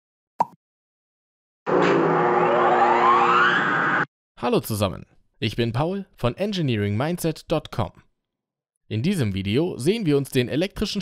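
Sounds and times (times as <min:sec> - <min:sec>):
electronic rising sweep with held tones: 0:01.7 - 0:04.1.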